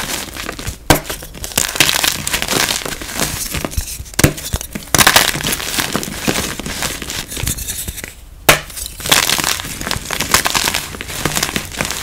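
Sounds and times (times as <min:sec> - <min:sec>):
chalk crunching and crumbling: 0:08.7 - 0:12.0.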